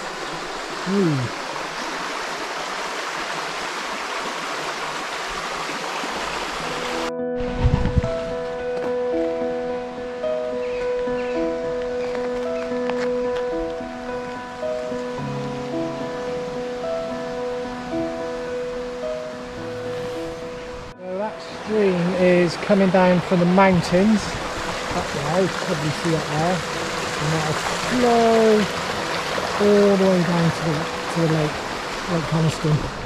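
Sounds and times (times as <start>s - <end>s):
rocky stream rushing: 0.0s - 7.1s, 21.4s - 33.0s
background music with held notes: 6.2s - 33.0s.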